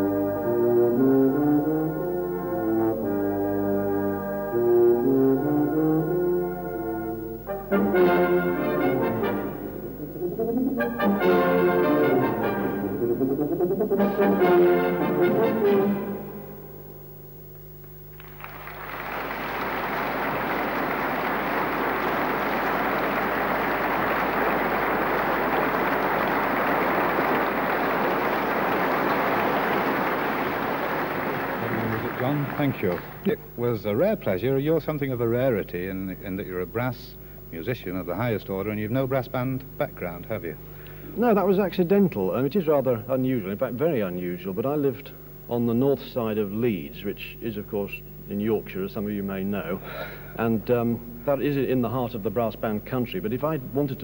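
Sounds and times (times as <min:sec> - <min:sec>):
brass band playing: 0:00.0 - 0:16.6
tuba solo: 0:00.0 - 0:16.7, 0:18.9 - 0:33.4
audience applause: 0:18.2 - 0:33.3.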